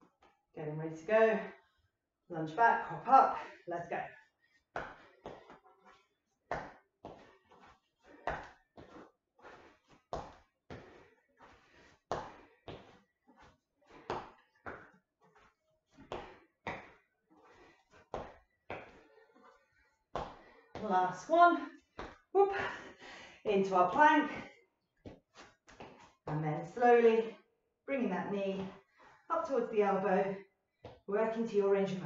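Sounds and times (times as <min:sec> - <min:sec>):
feet thudding on floor: 0:04.8 - 0:19.1, 0:20.1 - 0:20.9
light footfalls: 0:20.1 - 0:21.0.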